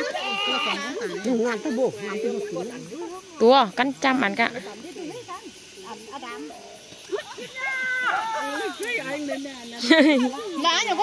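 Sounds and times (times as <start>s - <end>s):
women talking and calling out: 0.0s - 11.0s.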